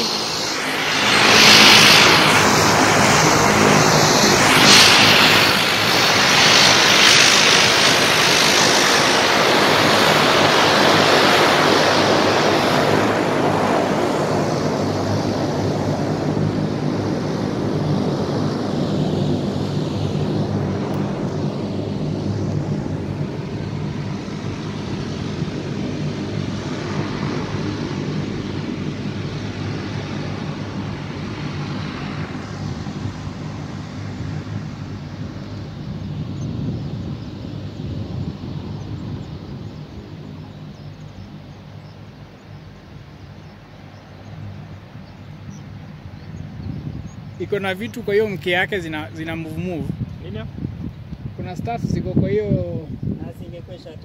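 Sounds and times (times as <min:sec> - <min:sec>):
turboprop plane taxiing: 0:00.0 - 0:54.0.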